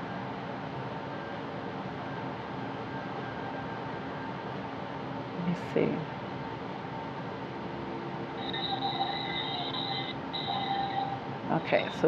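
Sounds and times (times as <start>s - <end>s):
faint steady hum: 0.0s - 12.0s
high-pitched steady whine: 7.4s - 12.0s.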